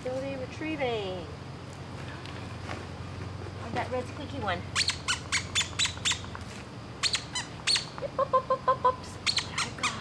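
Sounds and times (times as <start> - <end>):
squeaky dog toy squeaking: 4.8 - 6.3, 7.0 - 8.0, 9.2 - 10.0.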